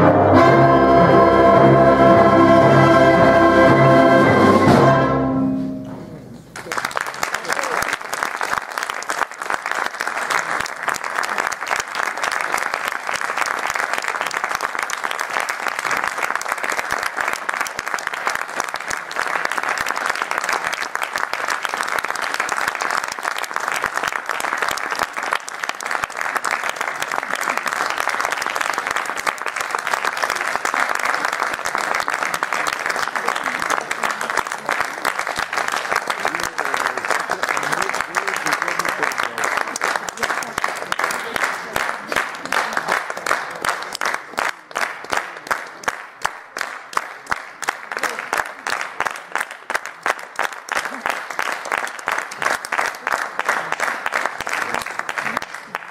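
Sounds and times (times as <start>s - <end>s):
audience applause: 6.5s - 55.9s.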